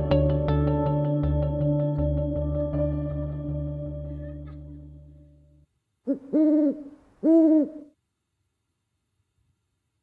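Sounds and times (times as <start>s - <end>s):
person hooting hum: 6.1s - 7.9s.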